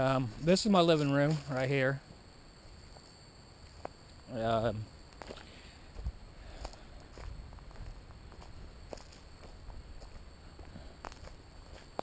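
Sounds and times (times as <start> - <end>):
footsteps on dry leaves: 5.2 - 10.3.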